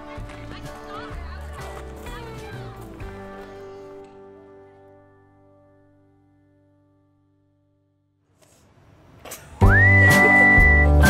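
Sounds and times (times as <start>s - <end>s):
whistled note: 9.6s - 11.0s.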